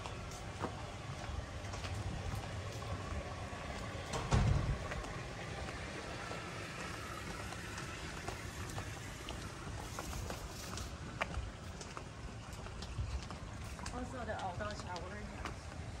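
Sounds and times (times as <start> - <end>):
footsteps on paved path: 0.0 - 16.0
wind buffeting microphone: 1.0 - 5.9.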